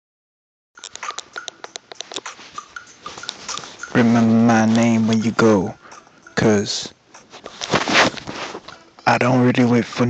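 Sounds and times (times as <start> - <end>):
phone handling clicks and rustling: 0.8 - 2.4.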